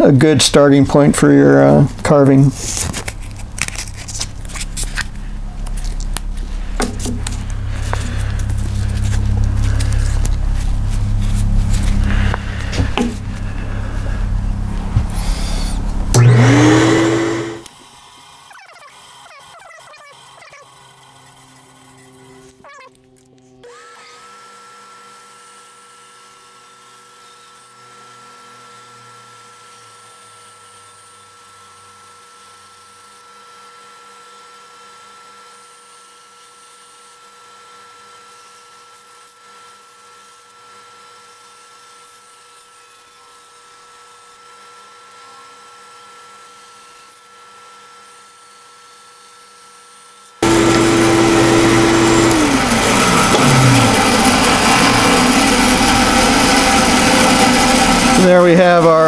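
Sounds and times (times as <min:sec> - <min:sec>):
bandsaw humming with high whine: 0:00.0 - 0:59.0.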